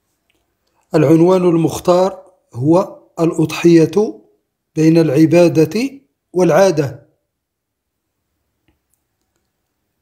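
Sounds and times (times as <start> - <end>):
faint click: 8.6 - 9.6.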